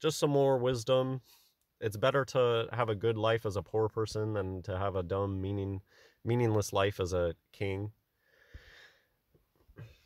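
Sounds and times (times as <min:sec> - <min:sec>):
faint breath drawn in: 0:05.8 - 0:06.2, 0:08.1 - 0:09.2.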